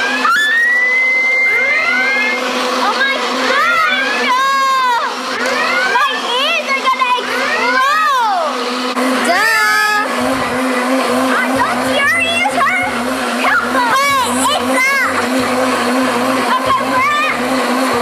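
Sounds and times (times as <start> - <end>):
blender running: 0.0 - 18.0
children squealing: 0.1 - 2.4.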